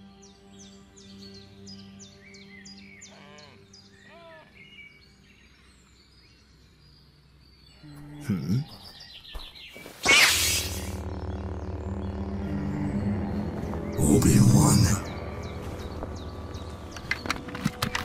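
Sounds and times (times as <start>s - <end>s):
soft background music: 0.0s - 9.2s, 10.6s - 18.0s
birds chirping: 0.0s - 18.0s.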